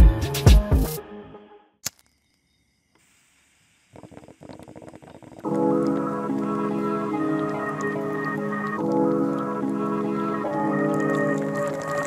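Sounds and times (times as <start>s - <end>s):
hip-hop beat: 0.0s - 1.0s
faint crackling ticks: 3.9s - 12.0s
music intro: 5.4s - 12.0s.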